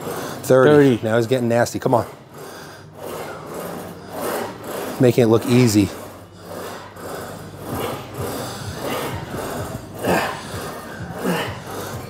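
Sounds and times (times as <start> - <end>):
man breathing hard: 2.3 - 12.0.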